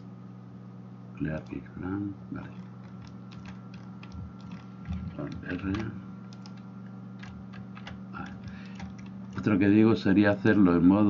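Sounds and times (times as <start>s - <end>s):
low electrical hum: 0.0s - 11.0s
computer mouse and keyboard clicks: 2.4s - 9.5s.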